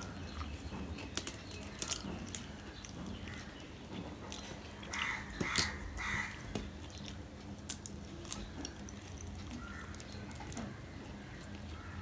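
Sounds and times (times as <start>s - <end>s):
chewing: 0.0s - 11.9s.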